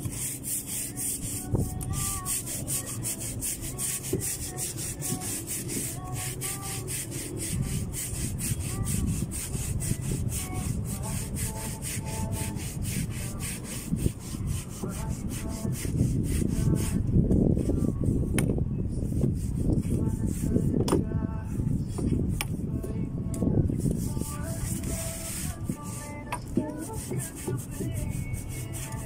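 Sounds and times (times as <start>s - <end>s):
brush scrubbing a deck: 0.0s - 18.3s, 19.0s - 20.8s, 23.7s - 29.0s.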